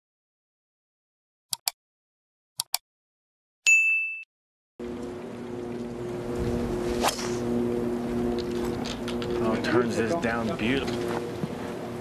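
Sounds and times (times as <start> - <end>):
low hum: 4.8 - 12.0.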